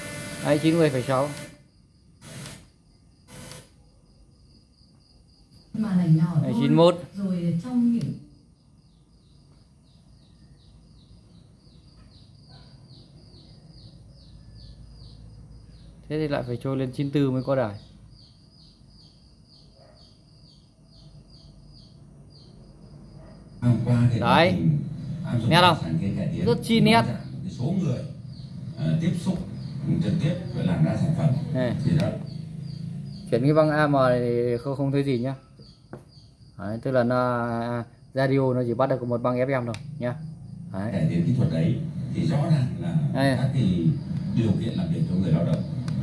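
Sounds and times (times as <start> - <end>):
small bird chirping: 2.8 - 46.0.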